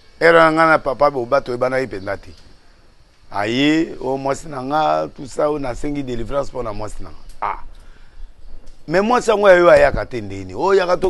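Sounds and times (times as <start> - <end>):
man speaking: 0.2 - 2.4, 3.3 - 7.8, 8.9 - 11.0
man croaking: 7.4 - 7.7.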